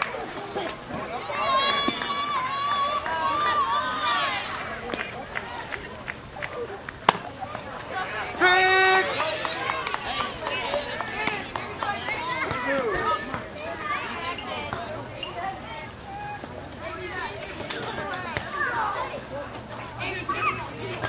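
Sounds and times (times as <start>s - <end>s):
people calling out: 0.0s - 21.0s
loud high call: 8.0s - 10.5s.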